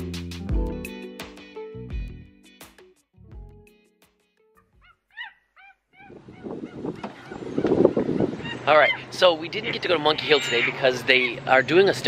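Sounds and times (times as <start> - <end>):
outdoor background noise: 5.9 - 12.0.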